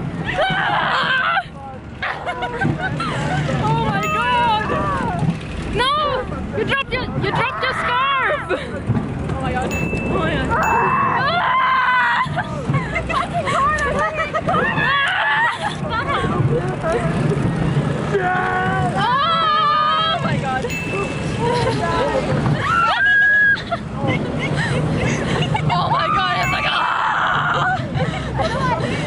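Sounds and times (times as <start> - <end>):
roller coaster car rumbling: 0.0 - 29.0
woman screaming: 7.3 - 8.4, 10.6 - 12.4, 22.6 - 23.6, 26.0 - 27.8
rider screaming: 26.0 - 27.8.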